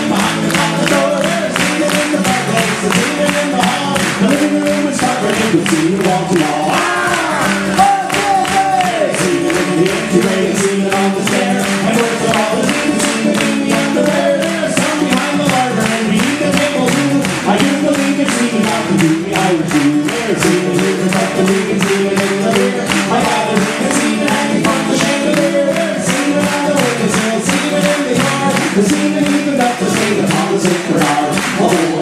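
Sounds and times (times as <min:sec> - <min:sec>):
acoustic guitar strumming: 0:00.0 - 0:32.0
crowd singing together: 0:00.0 - 0:32.0.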